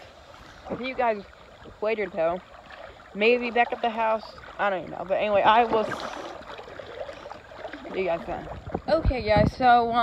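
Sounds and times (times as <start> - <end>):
creek water flowing: 0.0 - 10.0.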